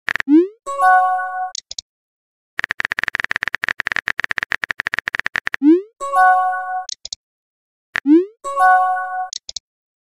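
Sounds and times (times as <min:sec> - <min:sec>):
keyboard typing clicks: 0:02.6 - 0:05.7, 0:06.8 - 0:07.2, 0:09.3 - 0:09.6.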